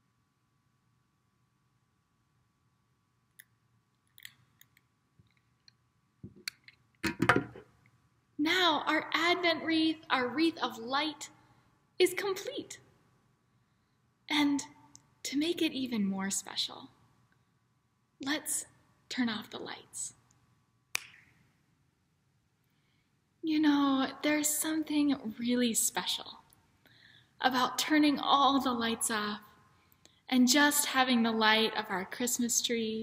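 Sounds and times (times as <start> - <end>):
finger snap with echo: 20.9 - 21.4.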